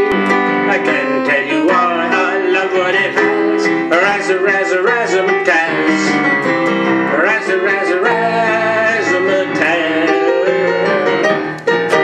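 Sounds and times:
digital piano jazz tune: 0.0s - 12.0s.

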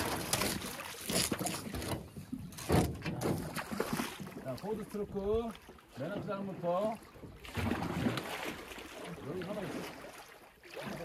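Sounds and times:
water sloshing around canoe: 0.0s - 11.0s.

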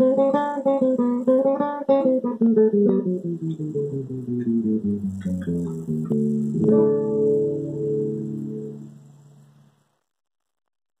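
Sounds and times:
acoustic guitar chord ringing: 0.0s - 9.6s.

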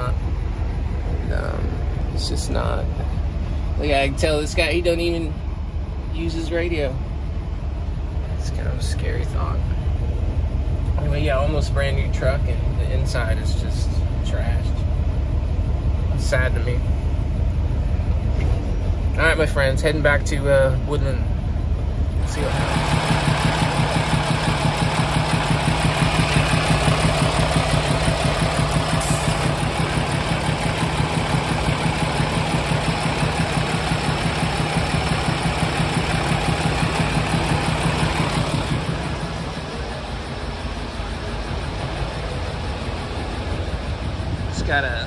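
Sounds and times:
diesel engine idling: 0.0s - 45.0s
man talking: 1.1s - 3.2s, 3.8s - 5.4s, 6.1s - 7.0s, 8.3s - 9.7s, 11.0s - 14.9s, 16.2s - 16.9s, 19.2s - 21.3s, 44.4s - 45.0s.

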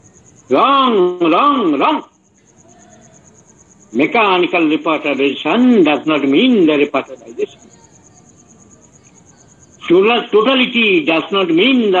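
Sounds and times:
faint high-pitched insect trill: 0.0s - 12.0s.

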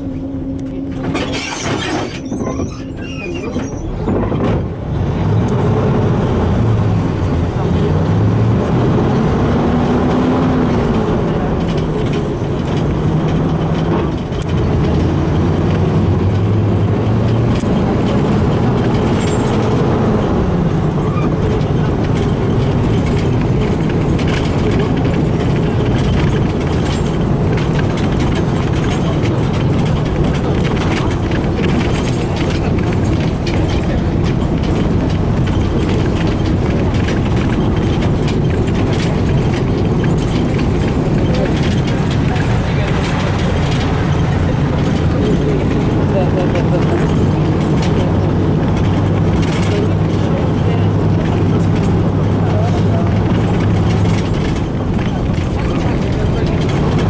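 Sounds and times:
bus engine accelerating: 0.0s - 57.0s.

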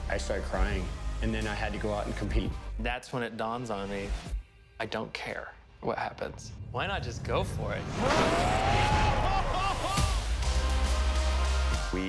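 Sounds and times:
loud whooshing rush: 6.5s - 9.2s.

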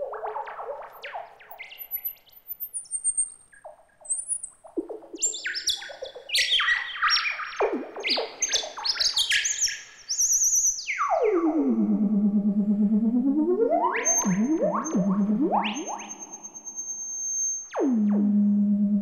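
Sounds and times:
synthesizer chirpy notes with delay echoes: 11.0s - 19.0s
warbling synth tone sliding down: 11.4s - 16.6s.

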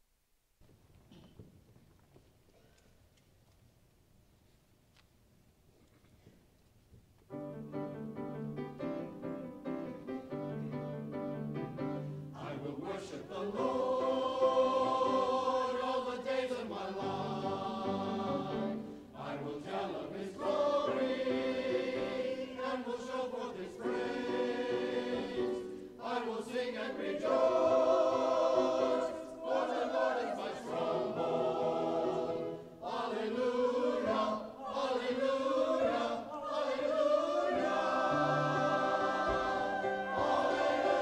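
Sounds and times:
mixed choir singing: 12.2s - 41.0s.

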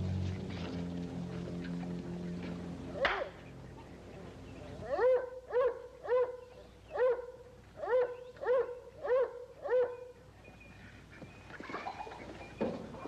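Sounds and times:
dog barking: 4.9s - 10.1s.

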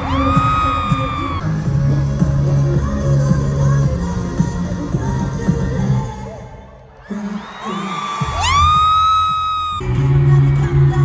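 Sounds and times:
pop music with heavy bass: 0.0s - 11.0s.

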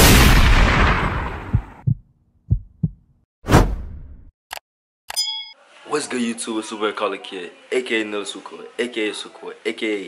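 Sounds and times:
low heartbeat-like thumps: 1.3s - 3.1s.

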